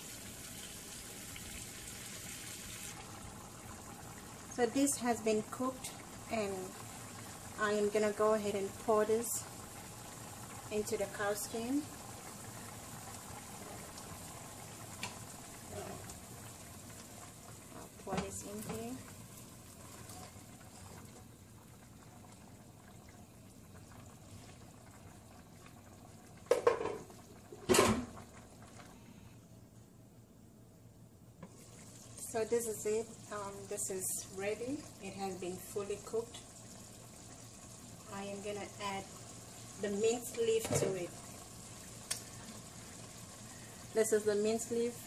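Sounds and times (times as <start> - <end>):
faint steady noise from pot: 0.0 - 45.0.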